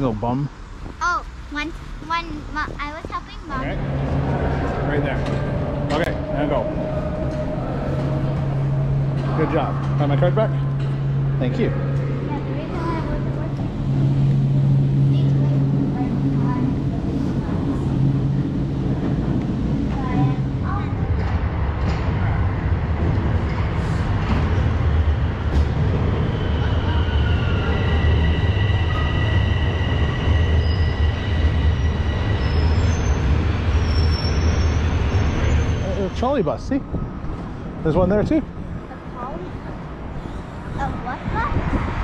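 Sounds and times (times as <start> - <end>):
subway train rumbling: 0.0 - 42.0
steady low hum: 2.3 - 33.8
high-pitched whines: 3.5 - 15.6.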